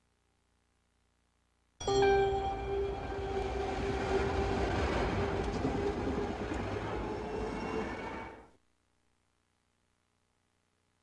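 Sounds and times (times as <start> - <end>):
light rail train passing: 2.0 - 8.6.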